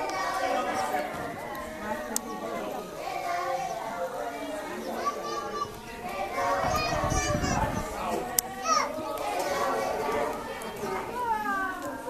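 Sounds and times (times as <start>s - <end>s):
children's voices and chatter: 0.0s - 12.0s.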